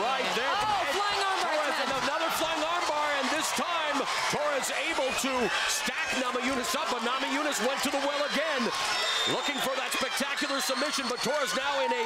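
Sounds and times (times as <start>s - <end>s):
voices shouting: 0.0s - 12.0s.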